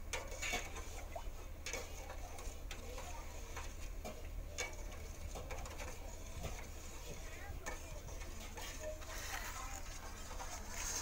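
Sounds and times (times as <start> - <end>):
spoon scraping a metal pot: 0.0 - 11.0.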